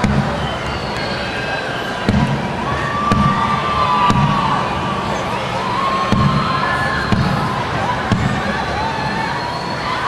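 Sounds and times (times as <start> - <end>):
held calls from crowd: 0.0 - 10.0
stadium crowd cheering: 0.0 - 10.0
low thump: 2.1 - 2.5.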